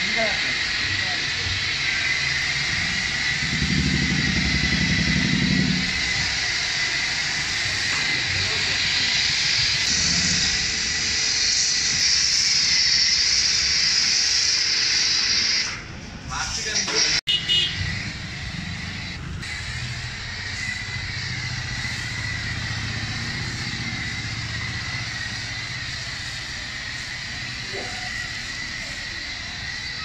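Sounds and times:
pressure washer spraying foam: 0.0 - 30.0.

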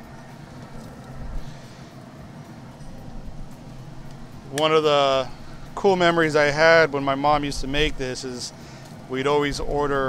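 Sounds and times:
pellet grill humming: 0.0 - 10.0.

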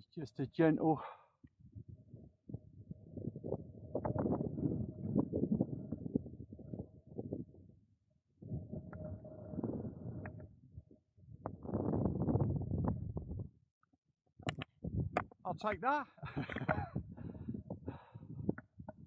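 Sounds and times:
wind buffeting microphone: 1.5 - 13.6, 14.4 - 19.0.

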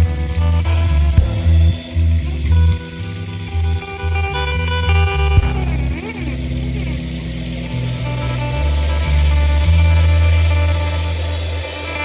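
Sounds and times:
cymbals: 0.0 - 12.0
distorted electric guitar: 0.0 - 12.0
electric bass low notes: 0.0 - 12.0.

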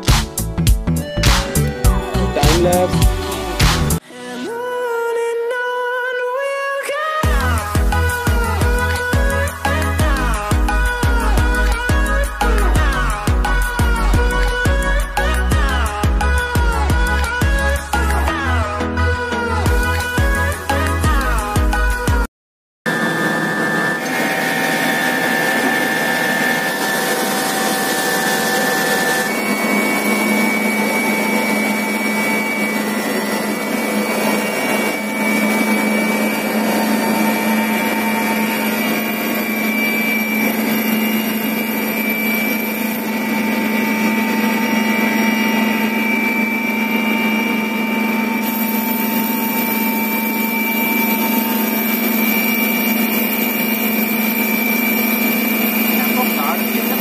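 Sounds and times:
helicopter engine and rotor drone: 22.9 - 57.0
turbine whine: 22.9 - 57.0.

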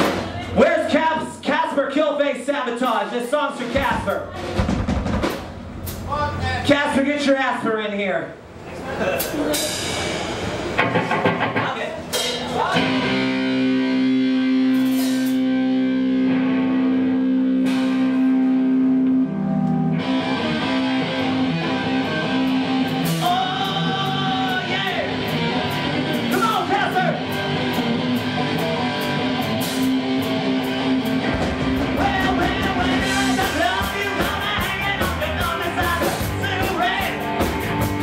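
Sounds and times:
live rock band playing: 0.0 - 1.4, 3.0 - 6.1, 9.2 - 38.0
drums: 0.0 - 38.0
electric guitar chord ringing: 12.8 - 23.2
person singing: 23.0 - 24.8, 31.8 - 37.5.

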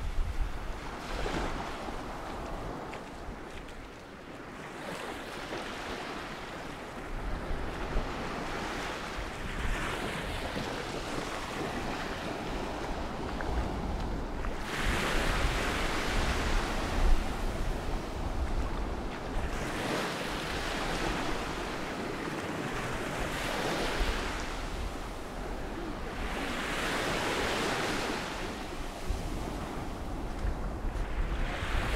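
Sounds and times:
waves breaking on shore: 0.0 - 31.9
wind rumble on microphone: 0.0 - 31.9.

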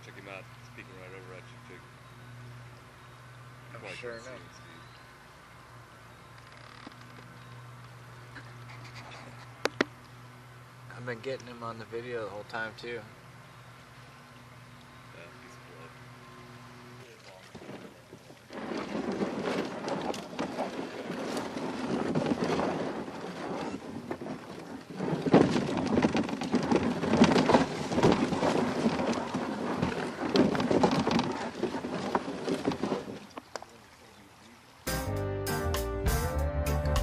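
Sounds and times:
canoe hull scraping over gravel: 17.4 - 33.5.

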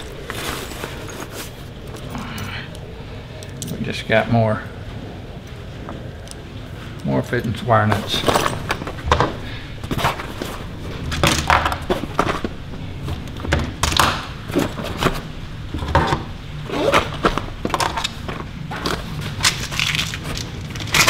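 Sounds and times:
fabric bag rustling: 0.0 - 2.4.

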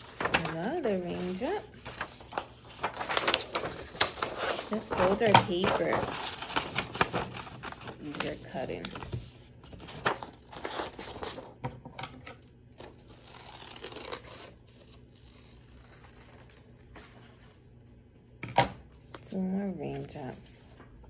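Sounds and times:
paper rustling: 0.0 - 11.6
scissors cutting paper: 12.8 - 16.6.

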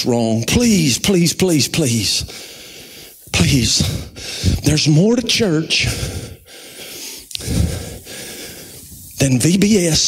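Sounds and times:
soft breathing: 2.2 - 4.7, 5.8 - 9.2
man gasping breath: 2.3 - 4.6, 5.8 - 9.1.

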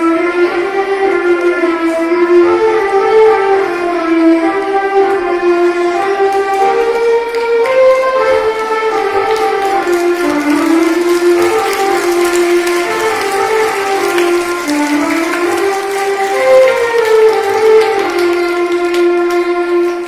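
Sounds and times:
electronic keyboard melody: 0.0 - 20.0.

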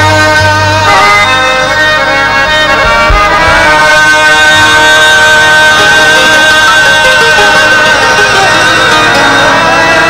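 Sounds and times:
harmonium melody over drone: 0.0 - 10.0.

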